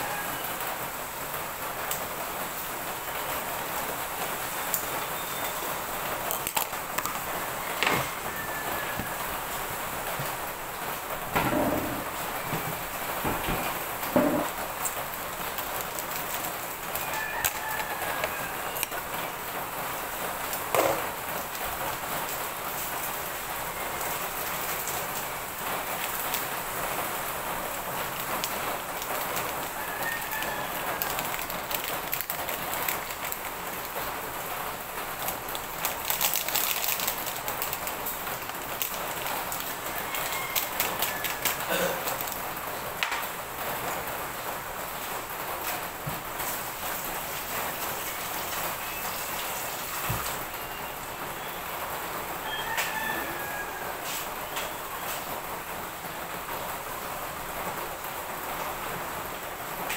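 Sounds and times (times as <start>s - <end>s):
distant rooster crows: 0.0s - 1.0s, 7.1s - 10.4s, 11.3s - 14.6s, 16.5s - 19.5s, 28.6s - 33.3s, 38.5s - 42.2s, 52.2s - 55.3s
rain-like hiss: 0.0s - 59.9s.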